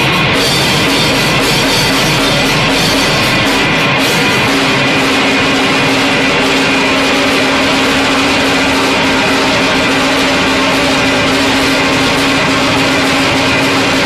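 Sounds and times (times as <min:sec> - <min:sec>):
loud distorted rock band: 0:00.0 - 0:14.0
steady low held note: 0:00.0 - 0:14.0.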